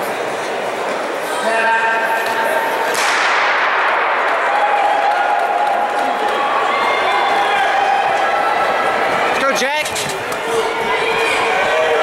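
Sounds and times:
spectators shouting and cheering: 0:00.0 - 0:12.0
starter's gun crack echoing: 0:02.9 - 0:04.0.

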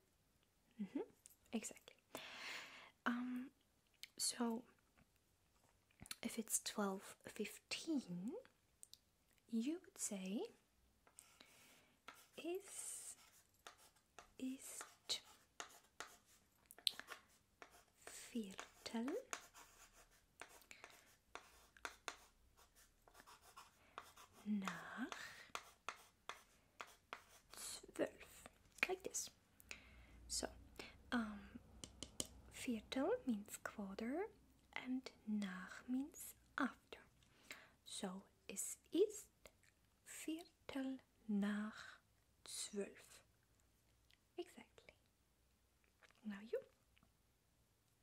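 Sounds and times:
woman whispering: 0:00.8 - 0:02.0, 0:32.6 - 0:37.1, 0:44.4 - 0:45.0, 0:46.1 - 0:46.8
chalk scratching on chalkboard: 0:11.1 - 0:27.7.

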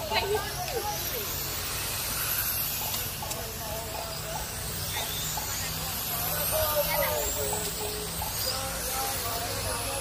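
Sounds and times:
radio-controlled cars whining: 0:00.0 - 0:10.0.

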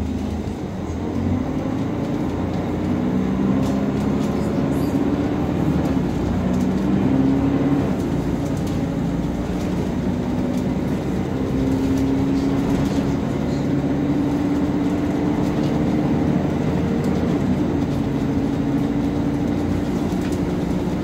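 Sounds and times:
bus engine and gearbox whine: 0:00.0 - 0:21.0
bus running noise: 0:00.0 - 0:21.0.

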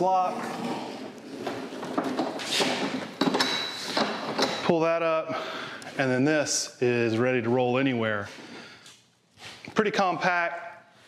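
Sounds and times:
metal clanks and rattling: 0:01.5 - 0:04.7.

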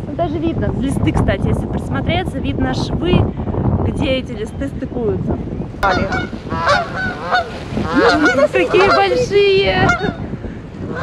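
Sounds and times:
geese honking in flight: 0:05.8 - 0:10.2.

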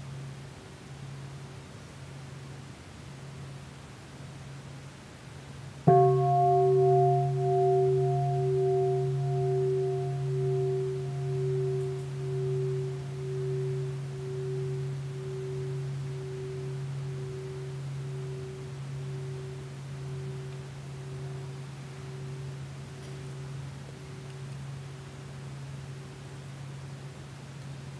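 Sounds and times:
bowl bell ringing: 0:05.9 - 0:24.8.

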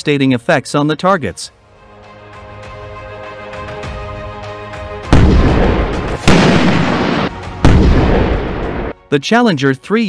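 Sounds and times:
background music with sustained tones: 0:01.5 - 0:10.0
loud explosion blasts: 0:05.1 - 0:08.9.

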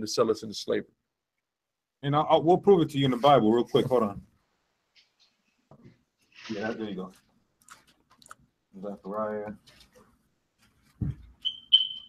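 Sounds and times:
short high-pitched beeps: 0:11.4 - 0:12.0.

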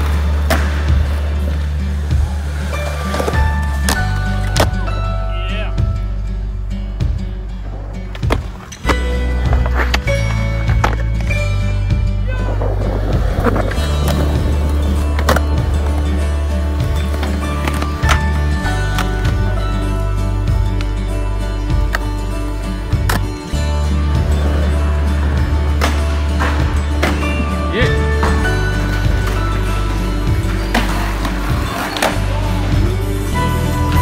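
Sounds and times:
music with steady bass line: 0:00.0 - 0:34.0
skateboard truck grinding: 0:12.4 - 0:20.1, 0:21.7 - 0:34.0.

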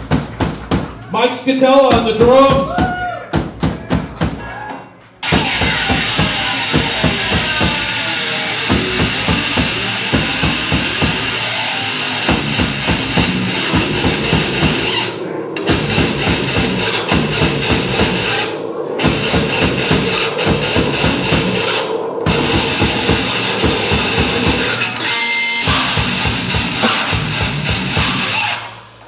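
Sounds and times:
fast drumming: 0:00.0 - 0:11.5, 0:12.2 - 0:25.0, 0:25.6 - 0:28.9
distorted electric guitar: 0:05.2 - 0:29.0.

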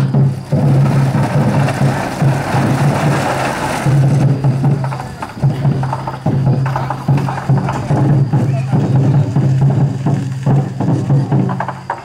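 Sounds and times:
crowd noise: 0:00.0 - 0:12.0
drum beating steady rhythm: 0:00.0 - 0:12.0.

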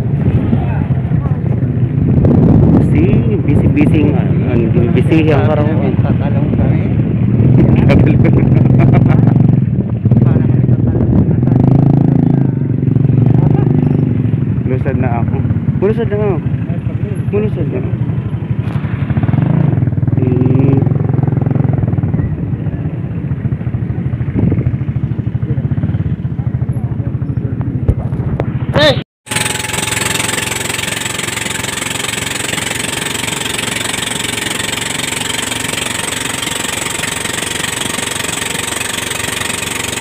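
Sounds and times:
people's voices: 0:00.0 - 0:01.8, 0:02.7 - 0:14.0, 0:25.2 - 0:28.1
small motorcycle engine running: 0:00.0 - 0:40.0.

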